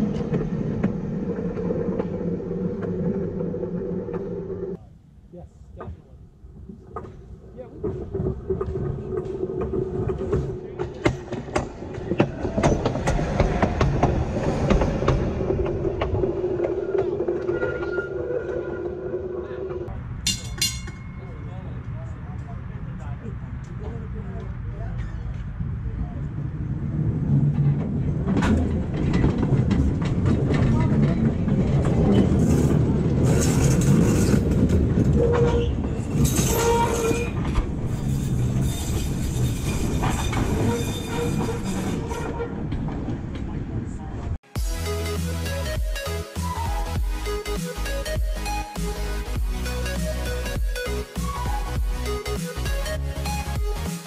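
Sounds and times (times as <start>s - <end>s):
streetcar motor hum: 0.0s - 4.9s, 21.0s - 44.4s
streetcar wheel rumble: 0.0s - 4.9s, 6.0s - 44.4s
wheels clicking over rail joints: 5.8s - 19.0s, 27.3s - 43.9s.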